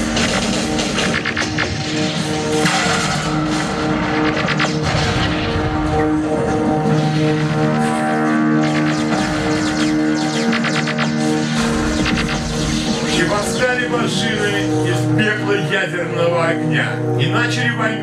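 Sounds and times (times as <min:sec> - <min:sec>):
synthesizer score with held notes: 0:00.0 - 0:18.0.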